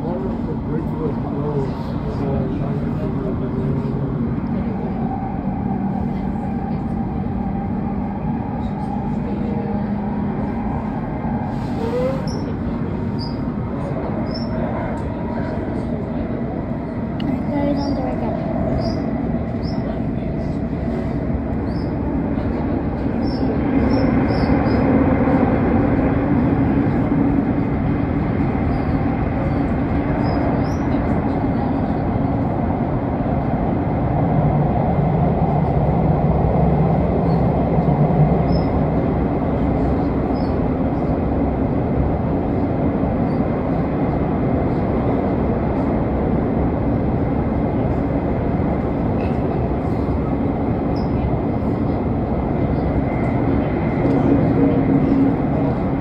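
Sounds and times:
train rumbling inside carriage: 0:00.0 - 0:56.0.

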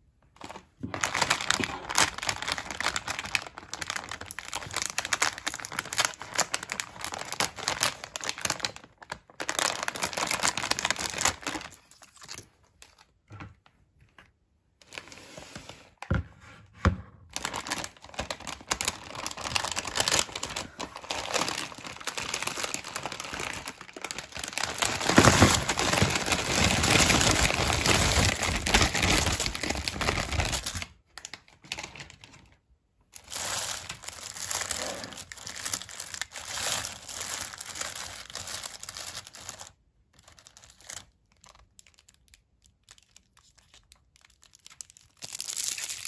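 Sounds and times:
foil wrappers crinkling in bag: 0:00.4 - 0:13.1, 0:17.3 - 0:46.0.

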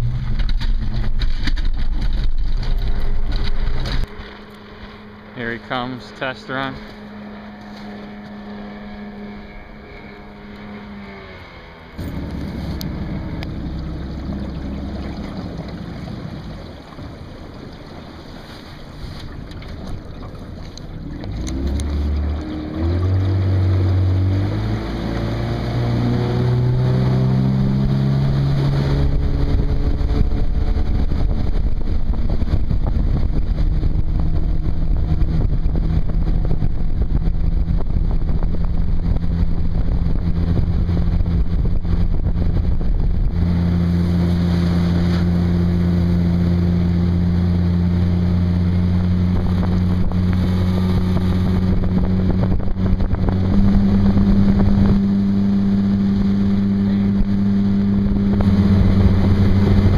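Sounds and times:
outboard motor revving and running: 0:00.0 - 0:59.9.

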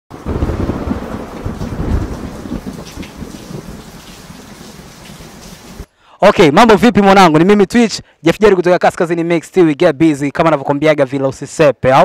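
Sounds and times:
steady rain: 0:00.1 - 0:05.9
thunder rumbling: 0:00.1 - 0:05.9
person speaking: 0:06.2 - 0:12.0.

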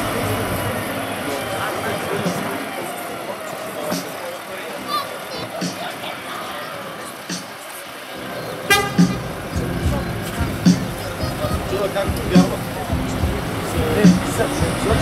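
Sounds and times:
distant voices: 0:00.0 - 0:15.0
vehicle horn toot: 0:08.5 - 0:12.3.

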